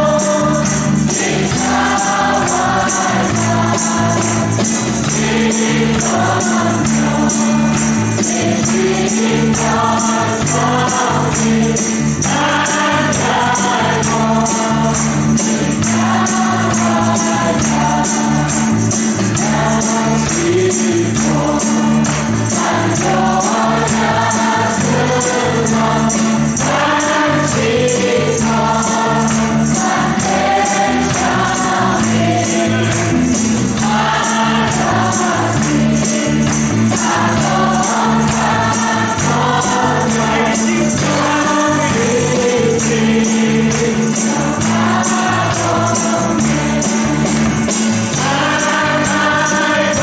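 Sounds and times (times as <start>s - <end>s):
bass guitar: 0.0s - 50.0s
group singing worship song: 0.0s - 50.0s
guitar: 0.0s - 50.0s
tambourine: 0.0s - 50.0s.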